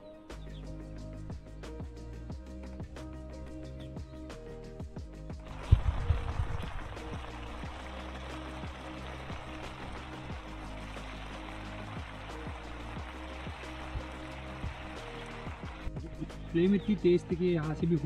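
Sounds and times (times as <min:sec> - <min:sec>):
background music: 0:00.0 - 0:18.0
broth boiling and bubbling: 0:05.4 - 0:16.3.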